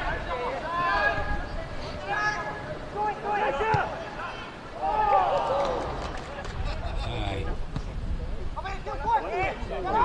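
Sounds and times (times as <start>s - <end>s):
players shouting and calling: 0.0s - 10.0s.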